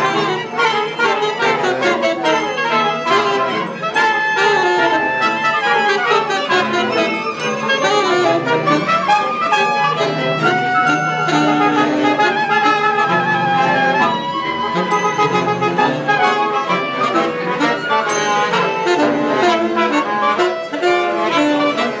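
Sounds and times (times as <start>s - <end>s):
clarinet: 0.0s - 22.0s
trumpet: 0.0s - 22.0s
violins: 0.0s - 22.0s.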